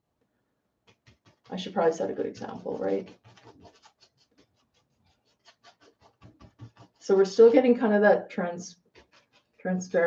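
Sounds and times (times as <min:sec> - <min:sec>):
paintbrush scrubbing on canvas: 0:00.9 - 0:08.0, 0:08.7 - 0:10.0.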